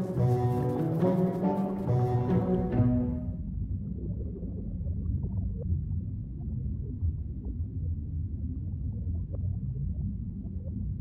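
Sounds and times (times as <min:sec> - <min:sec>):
steady low rumble: 0:02.2 - 0:11.0.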